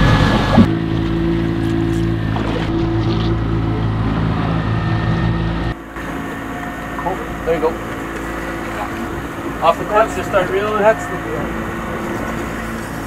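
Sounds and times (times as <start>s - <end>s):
outboard engine running: 0.0s - 13.0s.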